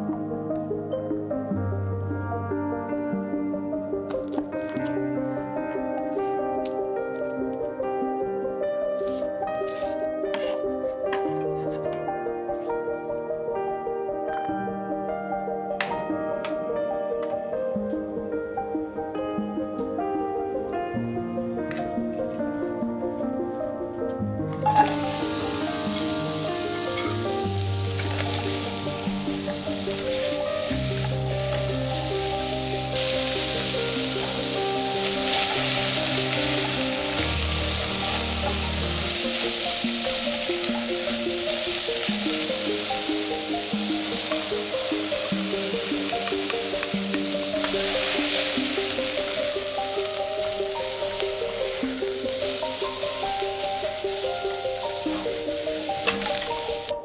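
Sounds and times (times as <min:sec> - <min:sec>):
soft background music: 0:00.0 - 0:57.0
onion sizzling in a saucepan: 0:09.0 - 0:10.6, 0:24.5 - 0:57.0
spatula stirring: 0:09.0 - 0:10.7.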